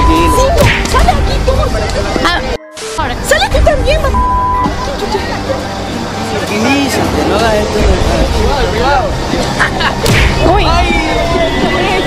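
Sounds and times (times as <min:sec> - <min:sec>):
people shouting: 0:10.3 - 0:12.0.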